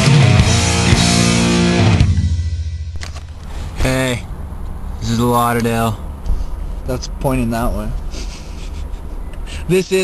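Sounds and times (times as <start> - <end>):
loud rock music: 0.0 - 3.1.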